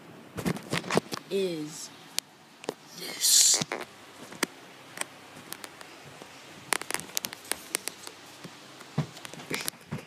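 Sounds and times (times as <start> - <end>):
phone handling clicks and rustles: 3.6 - 10.0.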